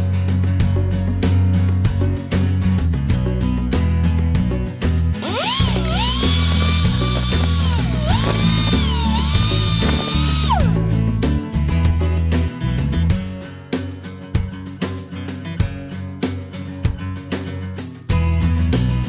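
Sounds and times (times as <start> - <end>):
guitar music: 2.1 - 19.0
die grinder cutting steel: 5.2 - 10.7.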